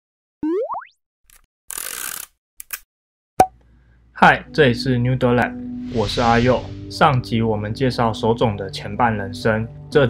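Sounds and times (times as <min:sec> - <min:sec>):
rising cartoon pitch glides: 0:00.4 - 0:00.9
hissing whoosh: 0:05.8 - 0:07.0.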